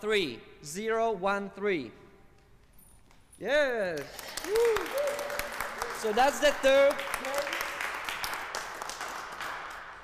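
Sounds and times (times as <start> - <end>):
audience applause: 4.1 - 10.0.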